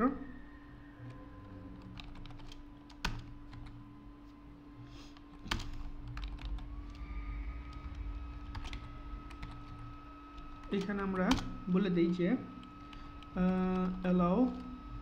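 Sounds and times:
low hum: 0.0 - 15.0
typing on a keyboard: 1.8 - 3.8, 5.3 - 6.7.

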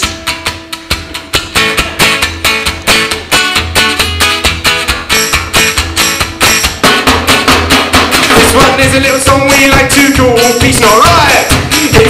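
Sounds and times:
acoustic guitar strumming: 0.0 - 12.0
drums keeping time: 0.0 - 12.0.

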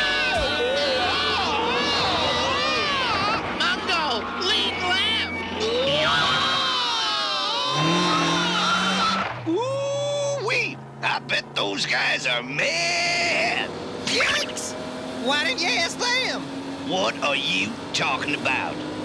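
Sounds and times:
cartoon voices laughing and yelling: 0.0 - 10.4
car engine drone: 0.0 - 19.0.

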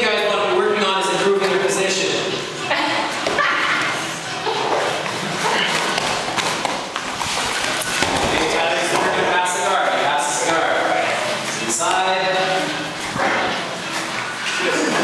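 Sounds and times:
bodies thudding on foam mats: 4.7 - 9.1.

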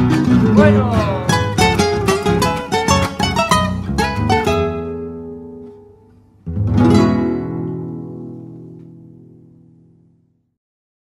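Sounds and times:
acoustic guitars and bass guitar: 0.0 - 10.4.

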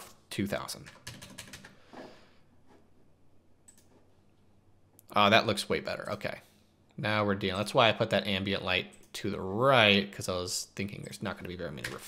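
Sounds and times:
faint keyboard typing: 0.7 - 1.8, 3.6 - 4.1.

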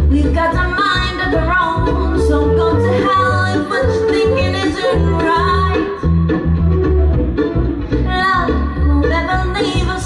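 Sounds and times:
mandolin: 0.0 - 10.0
upright bass pulsing: 0.0 - 10.0
person singing: 0.1 - 6.4
flute: 1.4 - 8.0.

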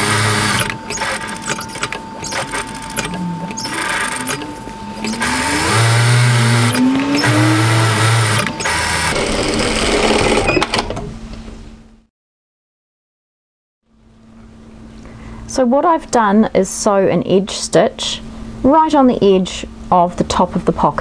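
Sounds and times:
sewing machine stitching: 0.0 - 10.8.

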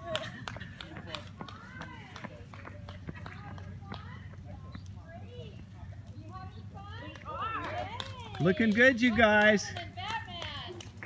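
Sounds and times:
running footsteps on asphalt: 0.0 - 11.0.

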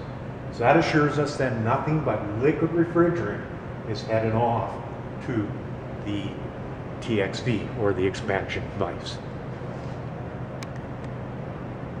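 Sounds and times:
air conditioning unit humming: 0.0 - 12.0.

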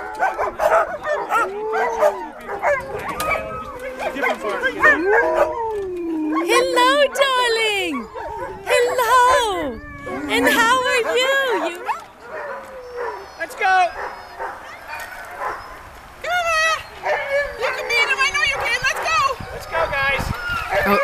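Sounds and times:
sled dogs howling and yipping: 0.0 - 21.0.

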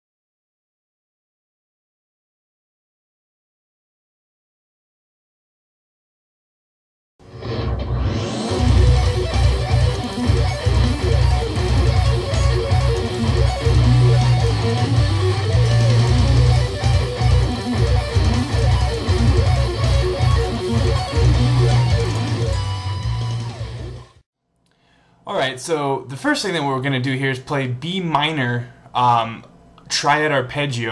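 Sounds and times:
distorted electric guitar arpeggios: 7.3 - 24.2.

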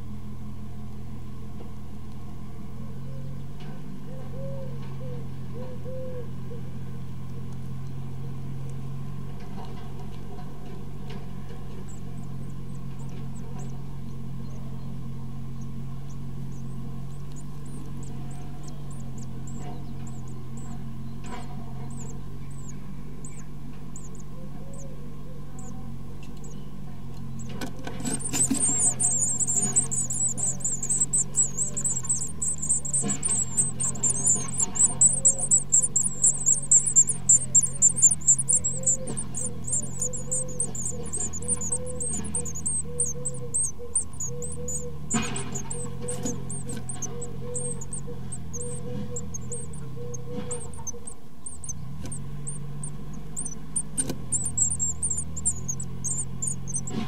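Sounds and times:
steady low hum: 0.0 - 57.0
nestlings cheeping: 10.8 - 57.0.

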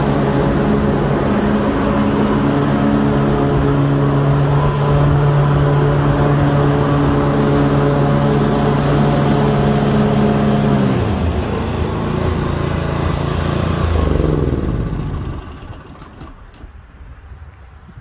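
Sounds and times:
lawn mower engine running: 0.0 - 16.6.

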